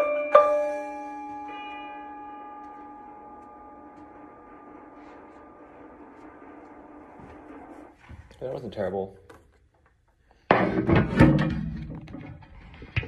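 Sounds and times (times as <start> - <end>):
mallet keyboard chord ringing: 0.0 - 4.5.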